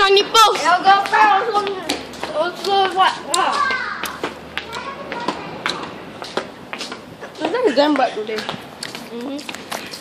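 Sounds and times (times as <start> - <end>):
children calling out: 0.1 - 6.1.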